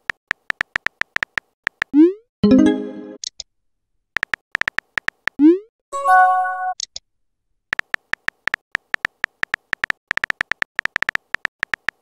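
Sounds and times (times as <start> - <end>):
phone keyboard typing clicks: 0.0 - 1.9, 4.2 - 5.4, 7.7 - 12.0.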